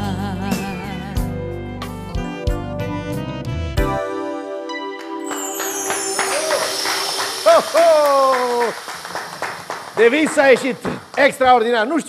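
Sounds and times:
held sung note: 0:05.2 - 0:09.8
audience applause: 0:05.3 - 0:11.7.

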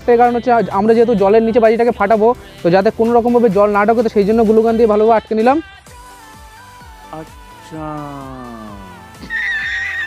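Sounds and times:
person singing wavering notes: 0:08.2 - 0:10.0.

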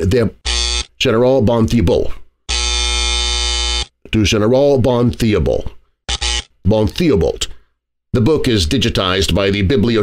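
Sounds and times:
electronic buzzer tone: 0:00.4 - 0:01.0, 0:02.5 - 0:04.0, 0:06.1 - 0:06.6.

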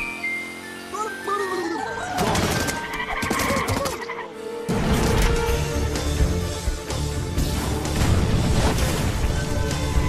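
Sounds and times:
action film music: 0:00.0 - 0:10.0.

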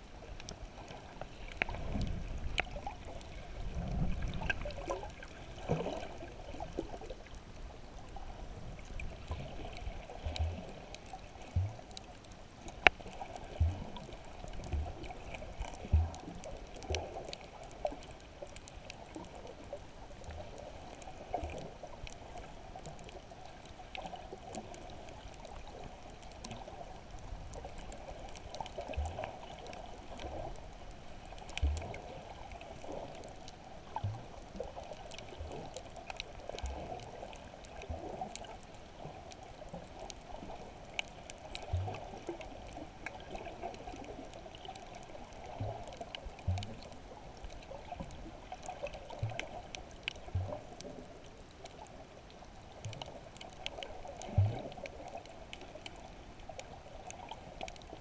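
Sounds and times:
muffled underwater wash: 0:00.0 - 0:58.0
faint clicks: 0:00.3 - 0:07.5, 0:08.8 - 0:19.6, 0:20.2 - 0:58.0.

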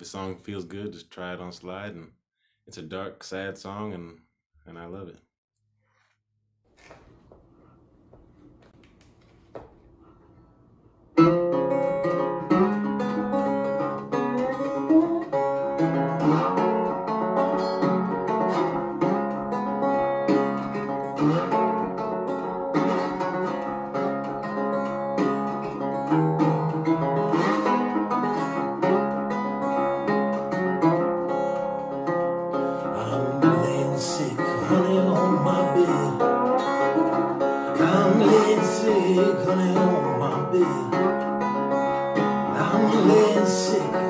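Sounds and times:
slide resonator guitar blues: 0:11.2 - 0:44.0.

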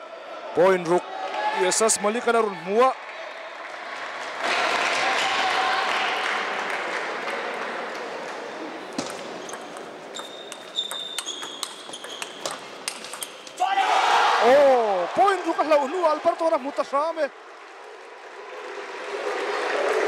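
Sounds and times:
murmur of large hall: 0:00.0 - 0:20.0
table tennis ball clicks: 0:09.0 - 0:13.6.

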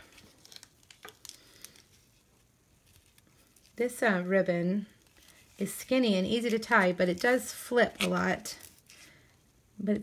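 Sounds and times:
faint ribbon rustling: 0:00.0 - 0:09.6.

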